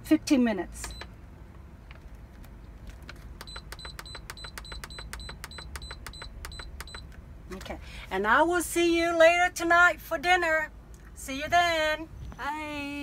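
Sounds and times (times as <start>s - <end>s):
short high beeps: 3.4s - 7.1s.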